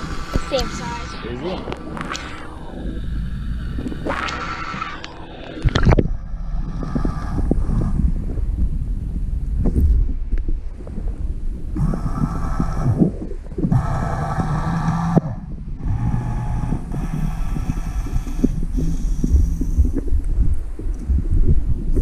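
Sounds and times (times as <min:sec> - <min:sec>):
muffled underwater rumble: 0:00.0 - 0:22.0.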